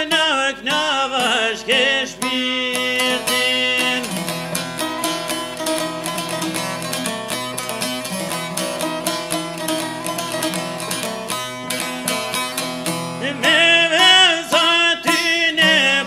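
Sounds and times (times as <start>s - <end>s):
man singing: 0.0s - 4.4s, 13.2s - 16.0s.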